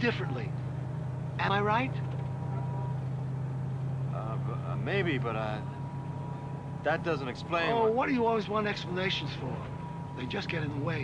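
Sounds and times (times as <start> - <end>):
bus engine drone: 0.0 - 11.0.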